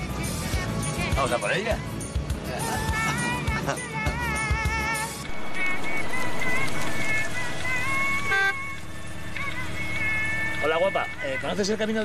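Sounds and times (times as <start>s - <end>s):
engine idling: 0.0s - 12.0s
car horn toot: 8.2s - 8.8s.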